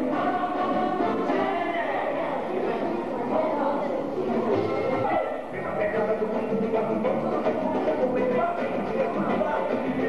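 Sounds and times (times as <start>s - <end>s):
group of people singing: 0.0s - 10.0s.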